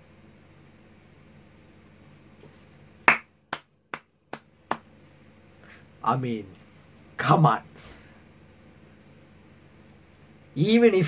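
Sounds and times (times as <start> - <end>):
sharp hand claps: 3.0 - 4.9.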